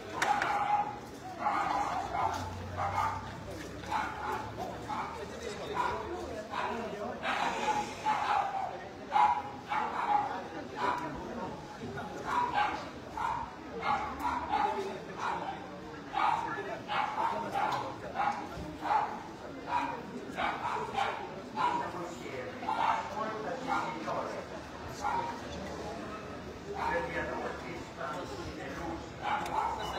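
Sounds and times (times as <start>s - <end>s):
dog barking: 0.2s - 3.3s, 3.9s - 5.2s, 8.0s - 11.0s, 12.3s - 15.6s, 16.2s - 21.9s, 22.7s - 24.0s, 29.2s - 29.9s.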